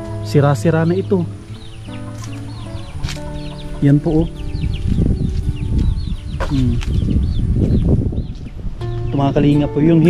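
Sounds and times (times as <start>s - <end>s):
background music: 0.0s - 10.0s
chickens chirping: 0.0s - 10.0s.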